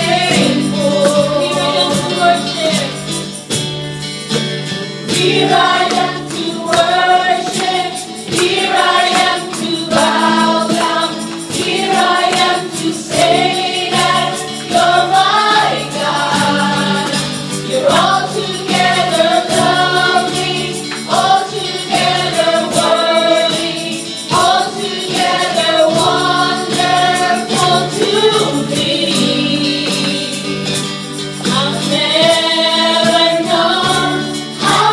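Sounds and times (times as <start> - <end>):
women singing together: 0.0 - 3.1, 5.1 - 30.8, 31.4 - 34.9
keyboard: 0.0 - 34.9
strummed acoustic guitars: 0.0 - 34.9.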